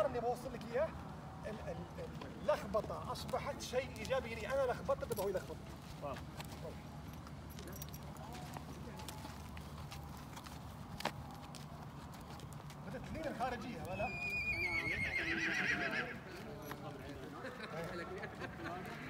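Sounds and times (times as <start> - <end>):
horse whinnying: 13.9 - 16.3.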